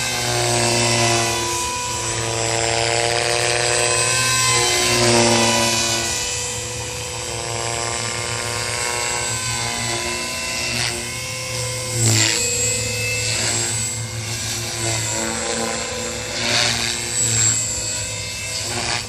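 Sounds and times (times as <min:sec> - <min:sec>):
model helicopter motor whine: 0:00.0 - 0:19.0.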